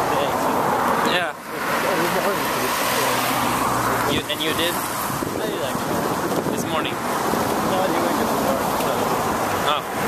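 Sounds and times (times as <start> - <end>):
tyres hissing on wet road: 0.0 - 10.0.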